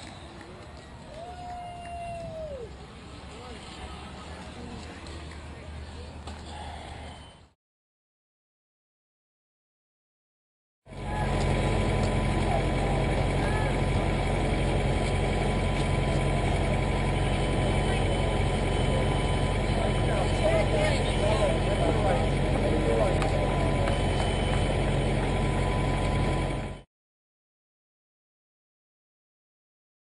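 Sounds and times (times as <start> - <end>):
indistinct voices: 10.9 - 26.6
low mechanical hum: 10.9 - 26.8.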